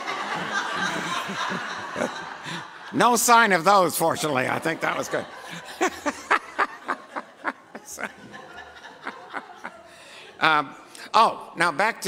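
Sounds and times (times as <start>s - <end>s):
people chuckling and laughing: 0.0s - 10.9s.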